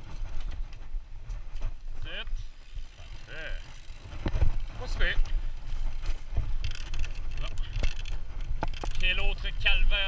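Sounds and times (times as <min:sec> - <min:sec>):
bike frame rattling over bumps: 0:00.0 - 0:10.0
tyres rumbling on dirt trail: 0:00.0 - 0:10.0.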